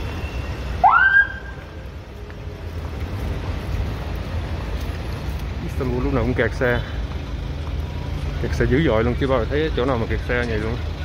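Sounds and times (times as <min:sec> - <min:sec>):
street traffic rumbling: 0:00.0 - 0:11.0.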